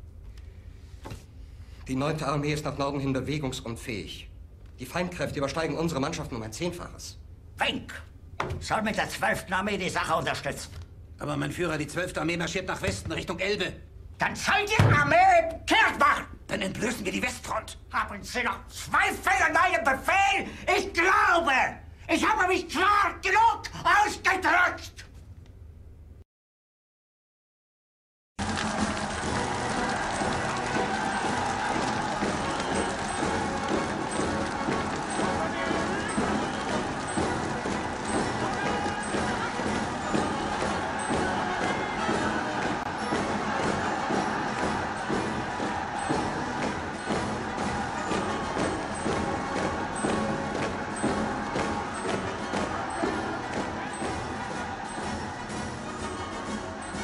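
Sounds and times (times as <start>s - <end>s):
film soundtrack music: 28.4s - 57.0s
large crowd noise: 28.4s - 57.0s.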